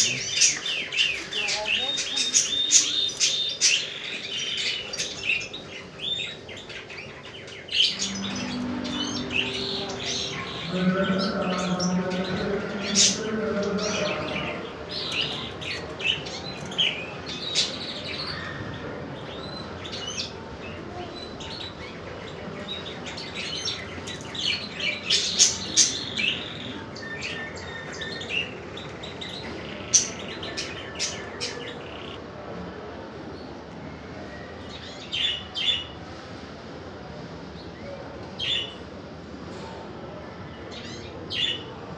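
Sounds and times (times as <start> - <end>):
small birds chirping: 0.0 - 32.2
steady background noise: 0.0 - 41.9.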